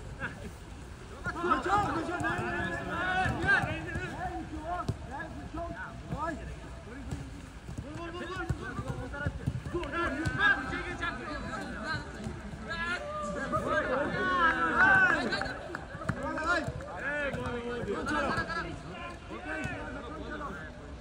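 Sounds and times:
players calling and shouting: 0:00.0 - 0:21.0.

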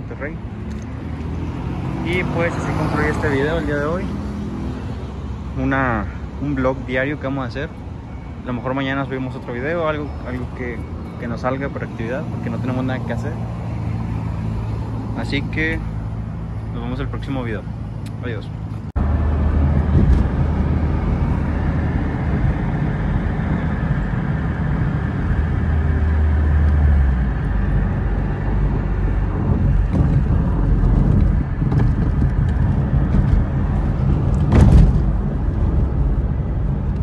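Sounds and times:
passing rush: 0:00.0 - 0:07.1, 0:18.9 - 0:37.0
car cabin rumble: 0:18.0 - 0:37.0.

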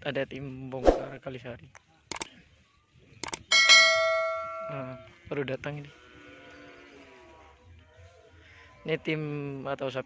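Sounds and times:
mouse clicks: 0:03.2 - 0:03.4
bell notification ding: 0:03.5 - 0:05.0.

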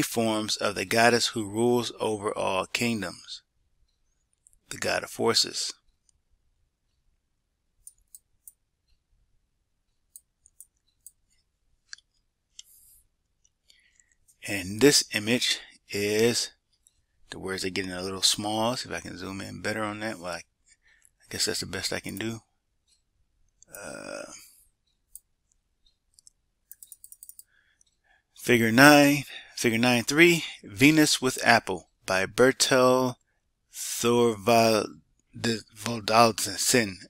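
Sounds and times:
scroll wheel clicks: 0:07.8 - 0:09.0, 0:09.8 - 0:14.4, 0:24.8 - 0:28.0
computer mouse clicks: 0:25.0 - 0:28.0.

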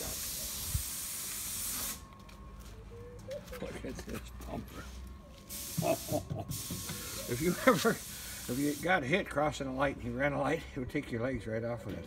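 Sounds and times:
compressed air hissing: 0:00.0 - 0:02.1, 0:05.5 - 0:09.1.

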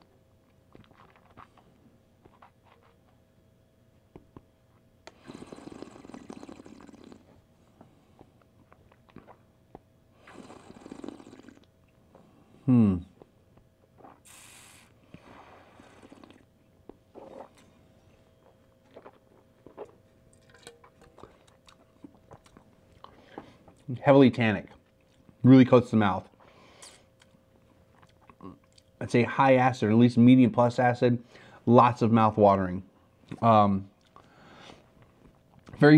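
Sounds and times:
wine slurping: 0:17.1 - 0:17.7.

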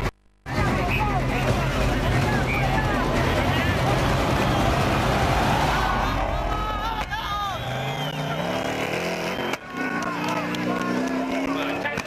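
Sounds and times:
rally car engine: 0:00.5 - 0:12.0
spectators shouting: 0:00.6 - 0:12.0.

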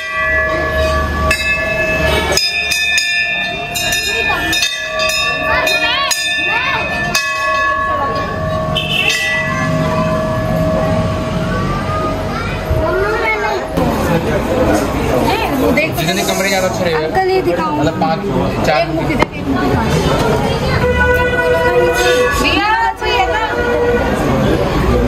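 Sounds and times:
brass bells clanging: 0:00.0 - 0:12.7, 0:20.8 - 0:24.4
people's voices: 0:00.0 - 0:25.0.

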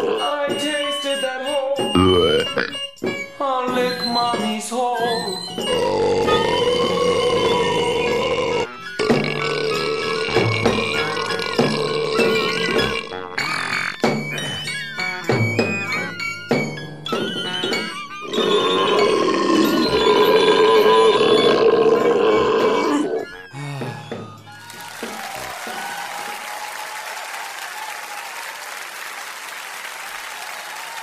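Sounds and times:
comic fart and burp noises: 0:00.0 - 0:00.4, 0:02.0 - 0:02.9, 0:05.7 - 0:14.1, 0:17.4 - 0:24.1.

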